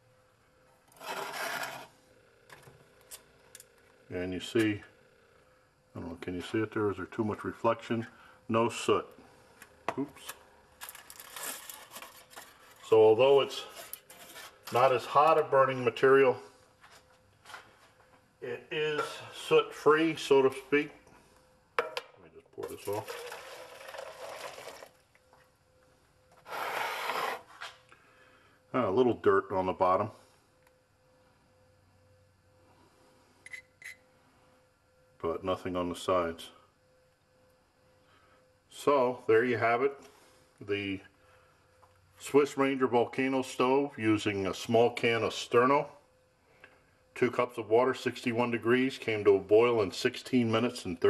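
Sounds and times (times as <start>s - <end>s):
metal gear scraping on workbench: 0.9s - 2.0s, 13.6s - 14.7s, 26.4s - 27.7s
hot water pouring from metal cup: 22.7s - 25.2s.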